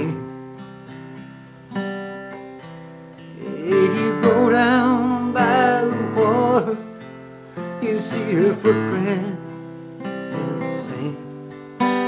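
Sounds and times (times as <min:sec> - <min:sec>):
man singing: 0:00.0 - 0:00.4, 0:03.3 - 0:07.0, 0:07.6 - 0:12.0
acoustic guitar strumming: 0:00.0 - 0:12.0.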